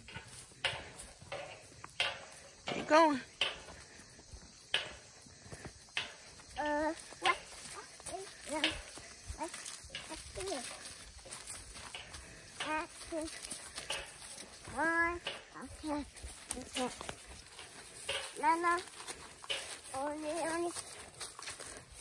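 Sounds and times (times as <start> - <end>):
footsteps in dry leaves: 6.4 - 22.0.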